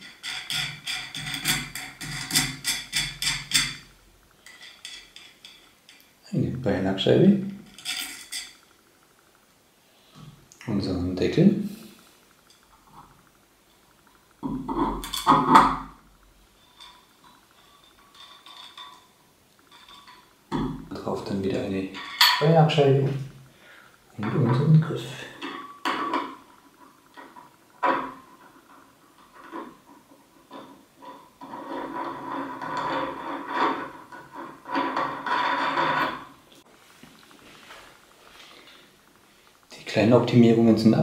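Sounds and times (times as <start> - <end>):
faint metallic clinks: 16.6 - 22.5.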